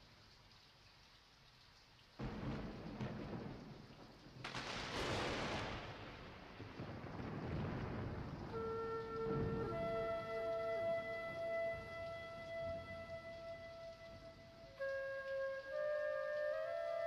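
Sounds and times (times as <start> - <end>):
rain-like hiss: 0.0 - 17.0
thunder-like rumble: 2.2 - 13.3
wind-instrument-like tones: 8.5 - 17.0.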